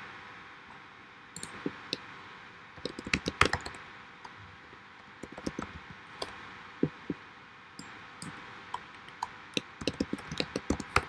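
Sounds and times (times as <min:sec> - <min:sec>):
laptop keys clicking: 0:02.8 - 0:03.8, 0:05.2 - 0:07.0, 0:07.8 - 0:11.0.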